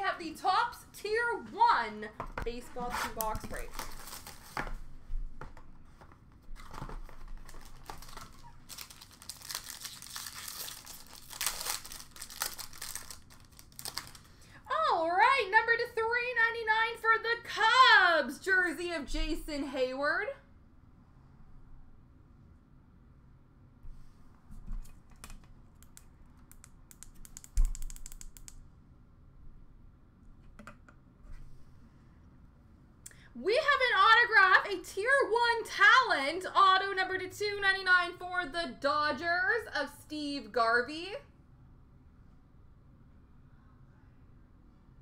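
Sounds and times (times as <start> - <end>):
person speaking: 0.0 - 3.9
plastic packaging crinkling and tearing: 2.9 - 4.8, 6.5 - 14.4
cards clicking: 25.1 - 28.6.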